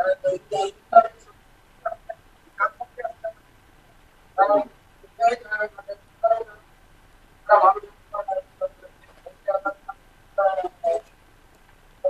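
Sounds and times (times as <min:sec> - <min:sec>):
garbled broken-up speech: 0:00.0 - 0:03.4, 0:04.4 - 0:06.6, 0:07.5 - 0:11.1.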